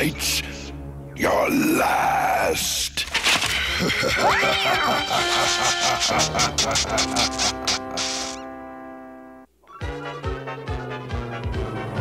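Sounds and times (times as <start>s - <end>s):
cartoon cat yowling laugh: 3.7s - 8.4s.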